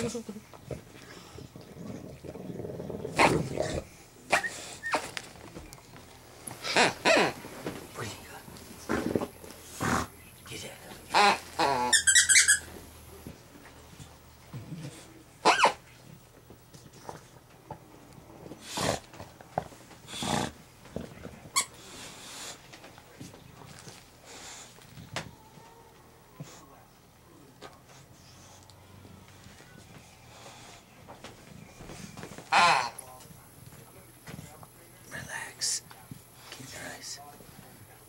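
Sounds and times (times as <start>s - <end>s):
dog grunting: 0.0s - 5.1s, 6.6s - 7.4s, 8.8s - 10.2s, 11.1s - 12.1s, 18.6s - 19.2s, 20.1s - 21.1s, 32.5s - 33.1s
bulldog vocalizing: 6.6s - 7.4s, 11.1s - 12.7s, 14.8s - 15.8s.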